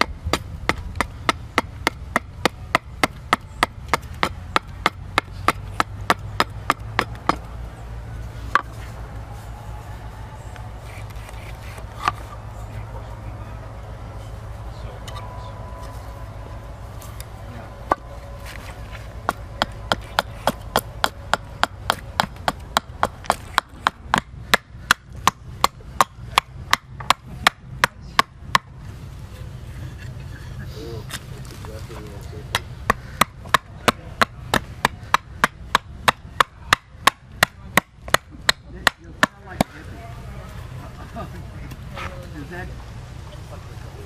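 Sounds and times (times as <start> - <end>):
hatchet chopping wood: 0.0 - 7.5, 8.5 - 8.7, 17.9 - 18.1, 19.2 - 28.8, 32.5 - 39.8.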